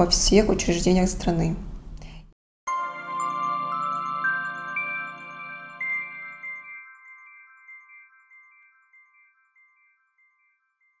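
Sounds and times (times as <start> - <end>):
bell-like chime tones: 2.7 - 11.0
light tinkles: 3.0 - 11.0.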